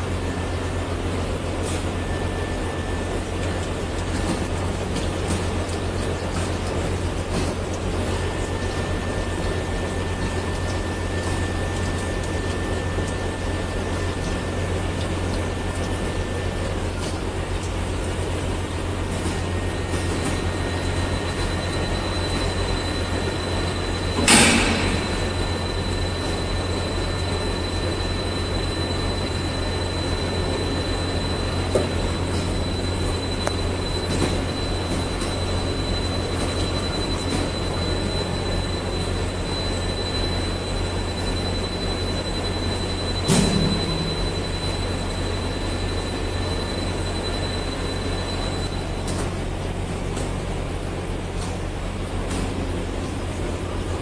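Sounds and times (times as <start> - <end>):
machine hum with high whine: 0.0 - 54.0.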